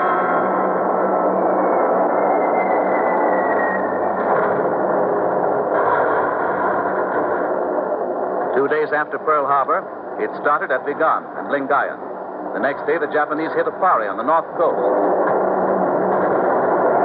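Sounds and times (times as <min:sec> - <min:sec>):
dense steady roar: 0:00.0 - 0:17.0.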